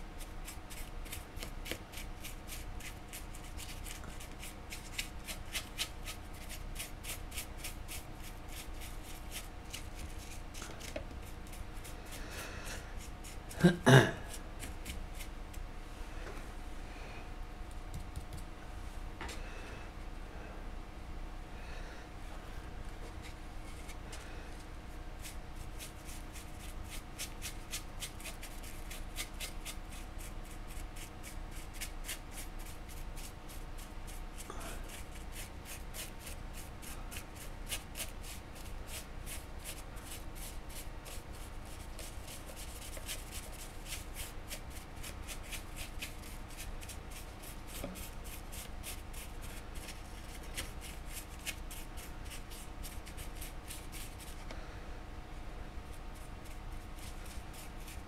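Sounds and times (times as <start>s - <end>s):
paintbrush scrubbing and dabbing: 14.3s - 15.3s, 25.2s - 54.4s, 56.1s - 58.0s.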